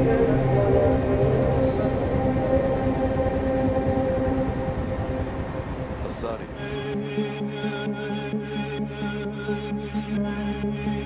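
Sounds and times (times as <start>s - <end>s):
low rumble: 0.0s - 9.0s
steady held drone tones: 0.0s - 11.0s.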